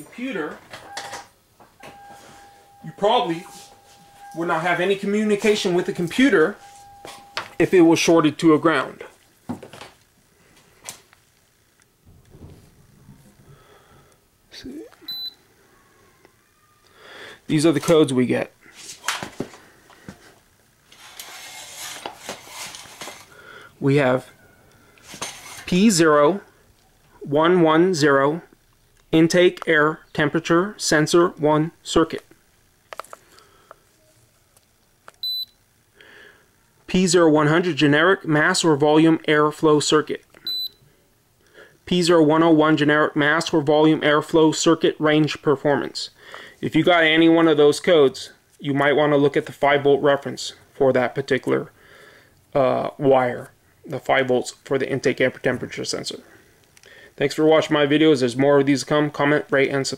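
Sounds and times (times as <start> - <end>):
short high beep: 1.8 - 7.9.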